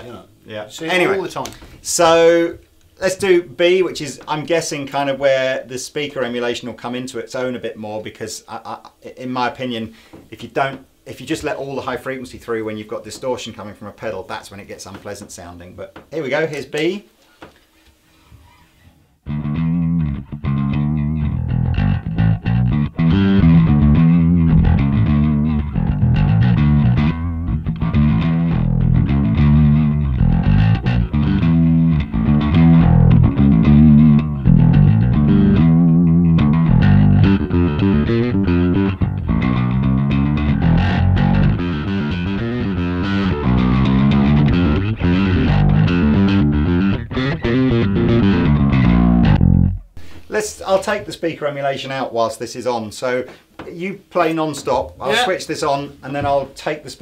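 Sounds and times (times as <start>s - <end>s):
distorted electric bass riff: 19.2s - 50.6s.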